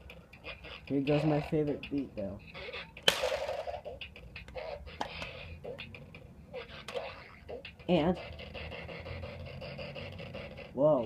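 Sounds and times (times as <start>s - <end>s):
distorted toy speaker beat and voice: 0.0s - 11.0s.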